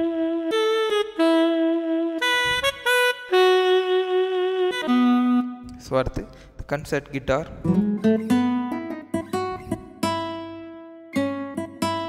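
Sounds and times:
keyboard saxophone melody: 0.0s - 6.0s.

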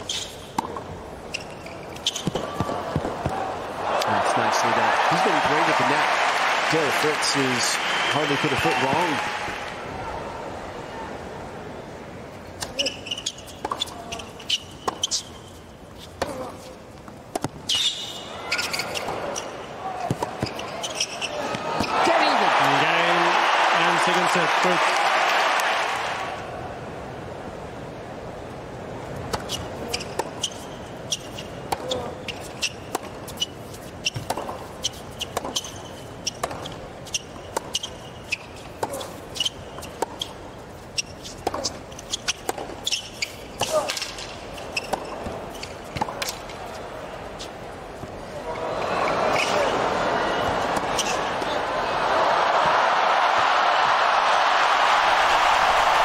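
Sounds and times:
stadium crowd cheering: 2.2s - 11.6s, 18.3s - 27.0s, 48.2s - 56.0s
tennis ball bounces: 16.2s - 17.8s, 20.0s - 20.6s, 29.3s - 40.4s, 41.0s - 46.4s.

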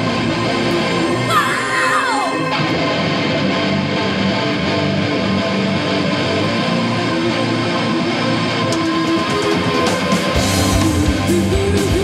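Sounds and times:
electric guitar: 0.0s - 12.0s
rock band playing: 0.0s - 12.0s.

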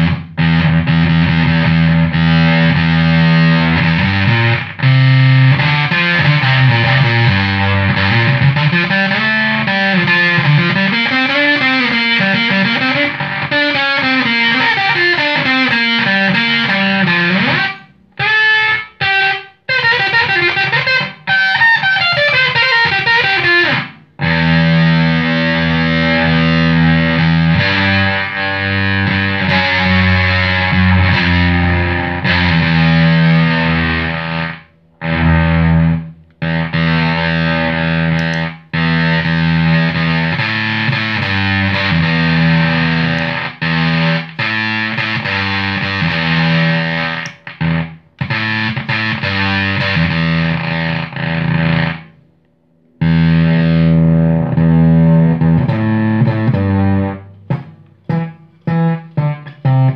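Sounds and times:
distorted fuzz electric guitar: 0.0s - 59.9s.

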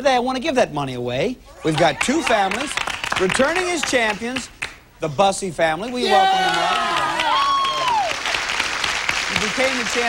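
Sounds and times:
audience applauding: 1.8s - 4.8s, 6.1s - 10.0s.

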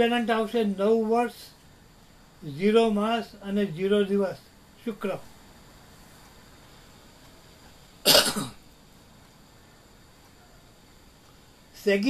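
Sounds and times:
person coughing: 8.1s - 8.6s.

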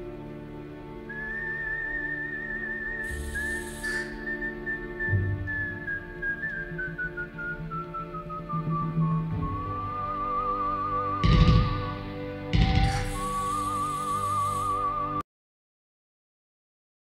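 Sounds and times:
wavering high melody tone: 3.0s - 4.3s
short hiss: 3.1s - 4.3s, 12.7s - 14.9s.

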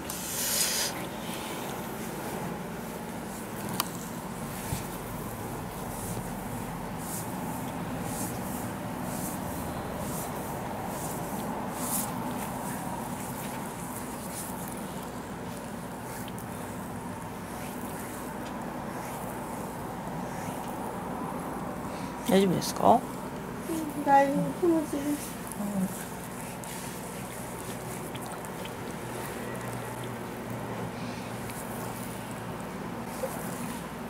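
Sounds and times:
steady background hum: 0.0s - 34.0s
oiled hands rubbing skin: 0.1s - 21.7s, 23.2s - 30.2s.

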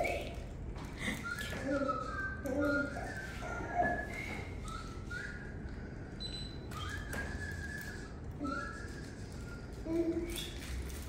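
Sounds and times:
soft high whistle-like tones: 1.0s - 11.0s.

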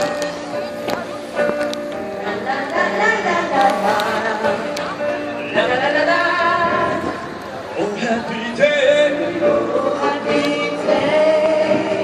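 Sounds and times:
choir singing long notes: 2.2s - 4.6s, 8.5s - 12.0s.

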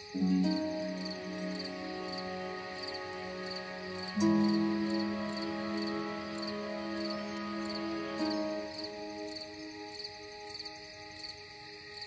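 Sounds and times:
ambient music held chords: 0.0s - 12.0s
crickets chirping: 0.0s - 12.0s.

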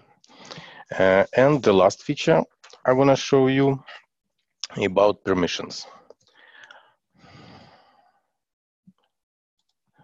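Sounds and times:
person breathing softly: 0.0s - 1.0s, 5.9s - 8.4s.

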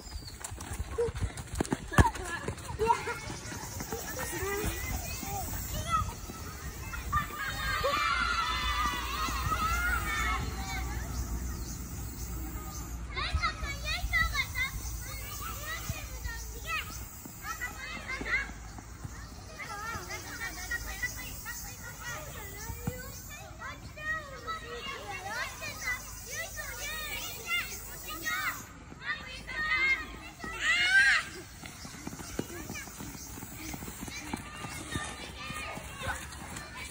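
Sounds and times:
young children shouting: 2.8s - 18.6s, 19.2s - 36.9s.

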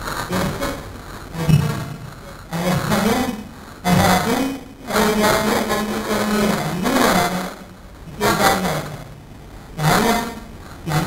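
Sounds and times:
man speaking into microphone: 0.3s - 9.2s, 9.8s - 11.0s.

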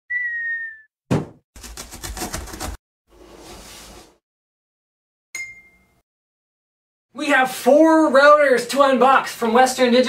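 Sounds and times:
whistle sliding down in pitch: 0.1s - 0.9s
thump: 1.1s - 1.4s
blade cutting through cardboard: 1.6s - 2.8s.

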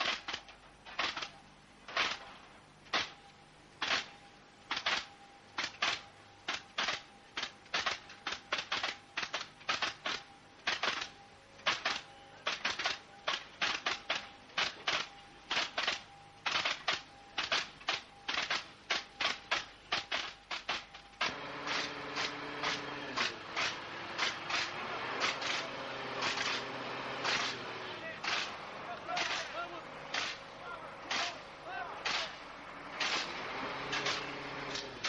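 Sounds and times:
short sharp clicks: 3.8s - 31.4s, 32.0s - 32.4s, 33.0s - 35.0s
faint steady high tone: 10.3s - 13.3s, 14.2s - 17.4s.

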